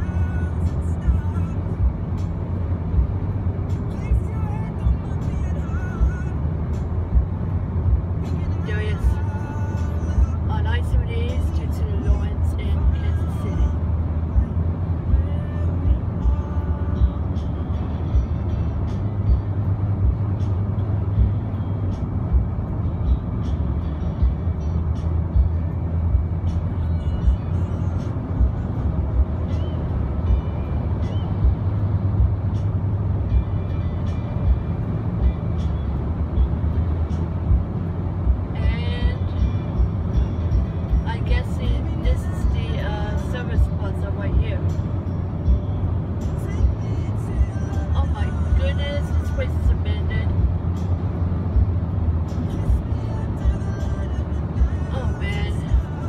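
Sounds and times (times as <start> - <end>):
faint music: 0.0 - 56.0
road and engine rumble in car: 0.0 - 56.0
voice: 41.1 - 44.6, 48.0 - 50.3.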